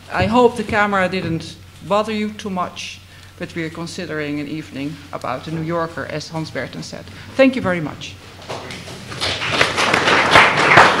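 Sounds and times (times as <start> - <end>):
audience applauding: 8.5 - 11.0.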